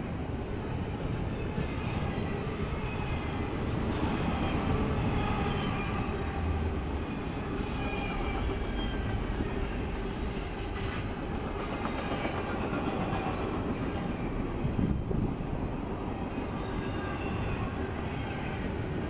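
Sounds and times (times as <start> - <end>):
train wheels rumbling on rails: 0.0 - 19.0
high wheel squeals: 1.6 - 11.3.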